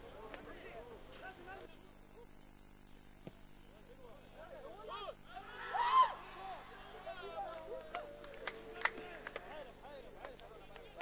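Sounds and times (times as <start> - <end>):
players shouting: 4.9 - 9.8.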